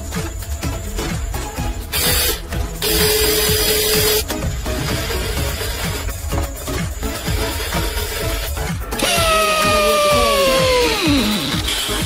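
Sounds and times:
background music with a beat: 0:00.0 - 0:12.0
small electric motor whining: 0:07.4 - 0:12.0.

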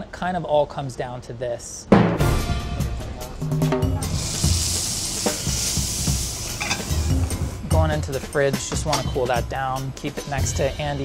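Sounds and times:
background music with a beat: 0:01.9 - 0:11.0
meat sizzling in a skillet: 0:04.1 - 0:07.6.

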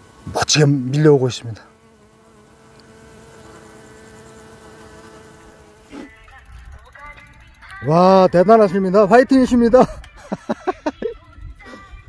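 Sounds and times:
flying insect buzzing: 0:00.0 - 0:12.0
bike freewheel ticking: 0:05.4 - 0:10.2.

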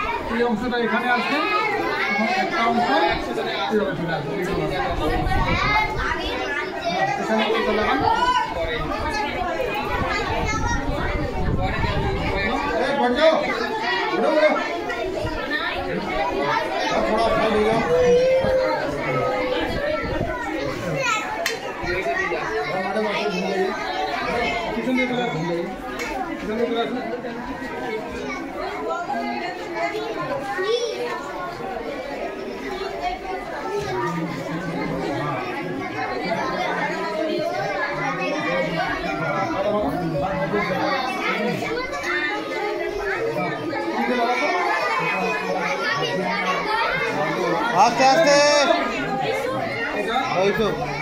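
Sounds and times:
crowd chatter: 0:00.0 - 0:51.0.

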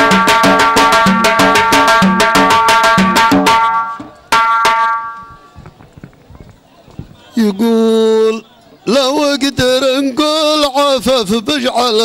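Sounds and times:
loud ringing drum stroke: 0:00.0 - 0:05.6
drum rhythm: 0:00.0 - 0:07.2.

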